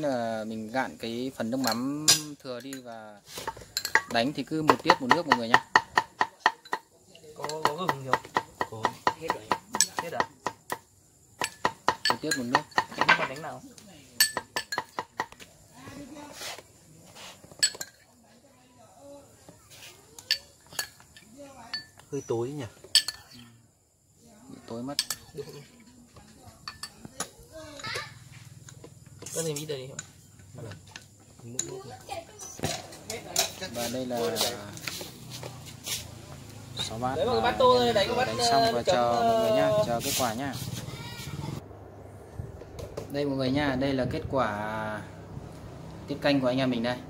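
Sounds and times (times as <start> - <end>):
ladle and chopsticks clinking bowls: 1.6 - 2.9, 3.5 - 10.3, 11.4 - 13.6, 14.2 - 15.3, 17.5 - 18.0, 20.2 - 22.1, 22.8 - 23.4, 24.9 - 25.6, 26.6 - 27.0.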